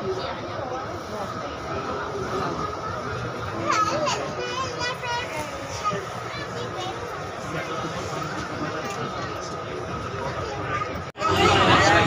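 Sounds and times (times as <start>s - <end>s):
passengers chatting: 0.0s - 12.0s
train carriage rumble: 0.0s - 12.0s.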